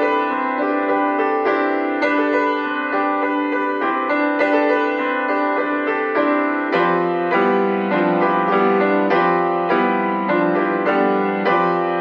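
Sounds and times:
grand piano four hands: 0:00.0 - 0:12.0.

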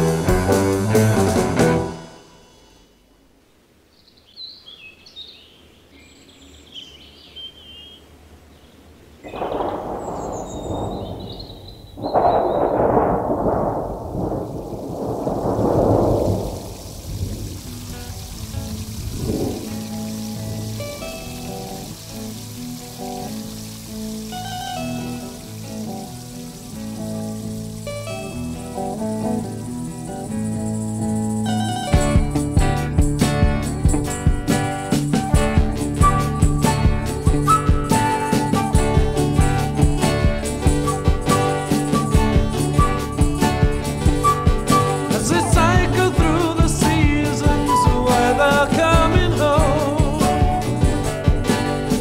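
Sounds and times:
picked guitar notes: 0:00.0 - 0:02.5, 0:17.3 - 0:52.0
faint bird chirping: 0:03.2 - 0:13.2, 0:14.3 - 0:32.1
rushing noise: 0:08.3 - 0:45.5
held keyboard chords: 0:17.2 - 0:52.0.

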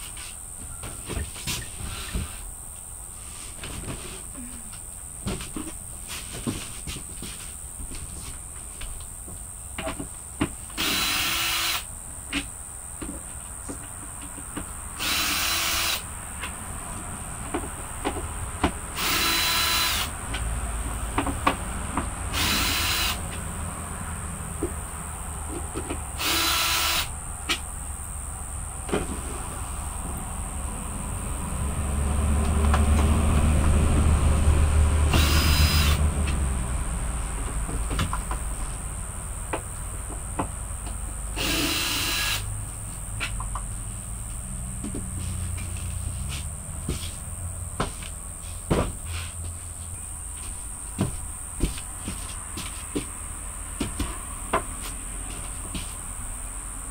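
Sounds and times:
steady high hiss: 0:00.0 - 0:18.0
power drill bursts: 0:10.8 - 0:11.9, 0:15.0 - 0:16.1, 0:19.0 - 0:20.2, 0:22.3 - 0:23.2, 0:26.2 - 0:27.1, 0:35.1 - 0:36.0, 0:41.4 - 0:42.5.

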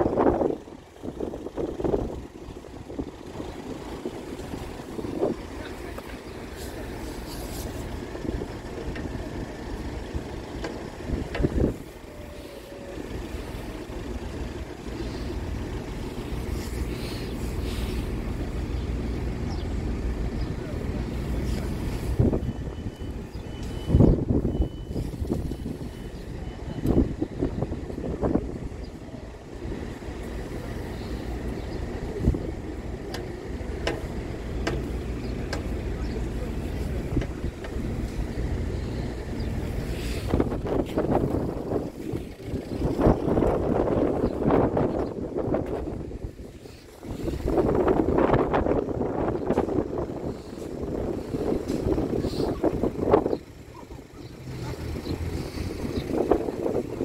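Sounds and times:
train engine idling: 0:00.0 - 0:57.0
wind on microphone: 0:39.2 - 0:53.5.

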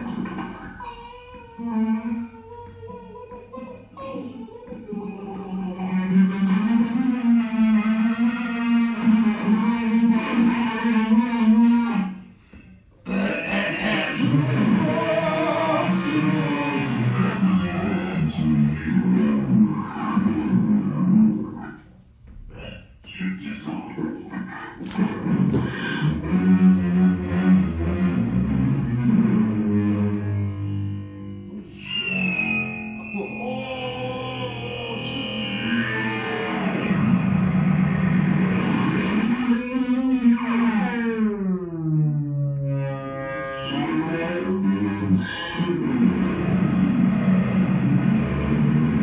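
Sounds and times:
distorted electronic drone: 0:26.0 - 0:41.7.

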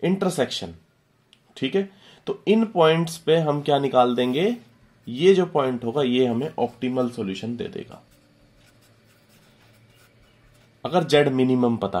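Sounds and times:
marker pen scratching on paper: 0:03.6 - 0:11.1.

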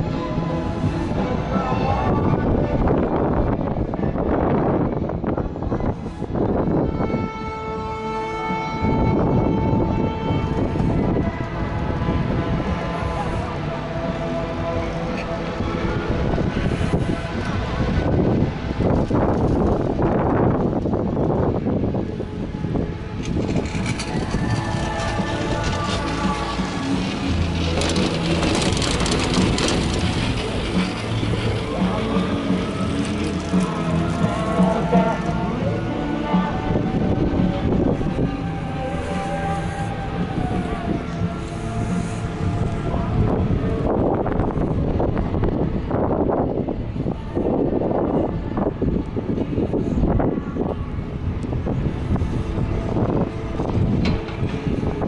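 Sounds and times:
wind buffeting microphone: 0:00.0 - 0:55.0
music with held notes: 0:22.0 - 0:45.9.

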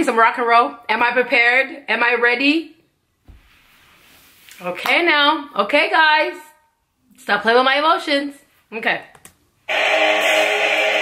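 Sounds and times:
loud rock band music: 0:09.7 - 0:11.0.

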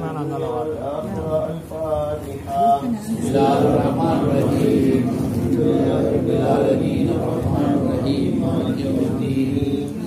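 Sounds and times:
men chanting together: 0:00.0 - 0:10.0.

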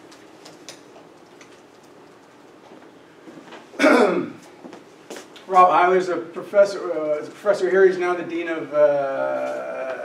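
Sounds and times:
man clearing his throat: 0:03.8 - 0:04.4.

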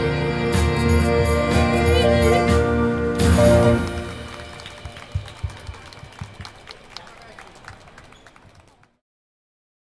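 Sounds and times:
audience applause: 0:03.1 - 0:09.0.

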